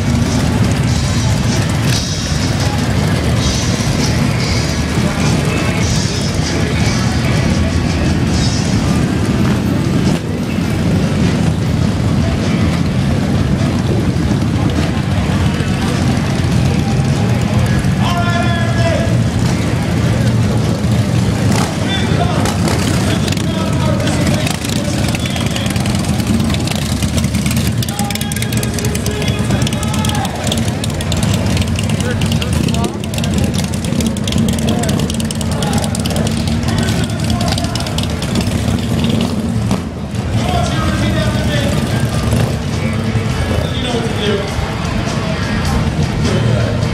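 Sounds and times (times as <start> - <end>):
motorcycle engines rumbling: 0.0 - 46.9
people's voices: 0.0 - 46.9.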